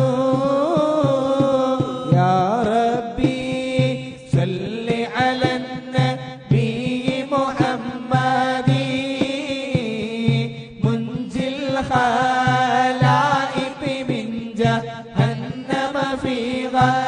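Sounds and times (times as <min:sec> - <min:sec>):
voices chanting devotional poem: 0:00.0 - 0:17.0.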